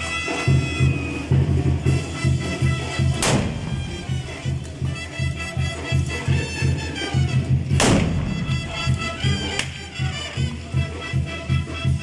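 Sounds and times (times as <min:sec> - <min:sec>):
band music with drum beat: 0:00.0 - 0:12.0
musket blast: 0:03.1 - 0:04.4, 0:07.7 - 0:09.8.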